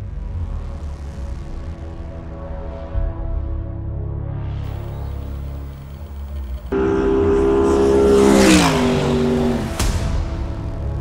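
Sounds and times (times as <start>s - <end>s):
race car passing at speed: 4.7s - 10.9s.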